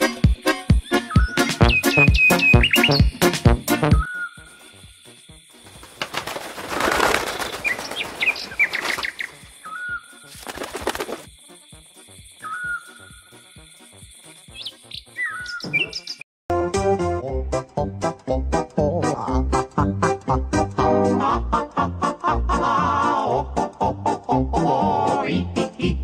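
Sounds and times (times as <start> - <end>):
music with steady beat: 0.0 - 4.0
wing flapping: 5.6 - 9.6, 10.3 - 11.3
cartoon bird chirping: 14.5 - 16.2.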